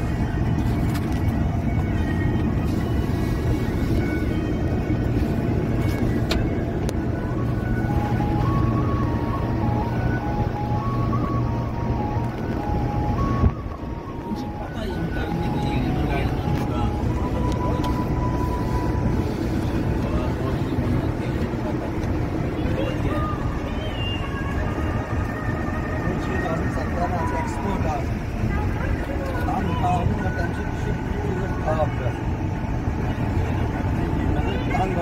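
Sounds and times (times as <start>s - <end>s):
music playing: 0.0s - 35.0s
road vehicle rumble from inside: 0.0s - 35.0s.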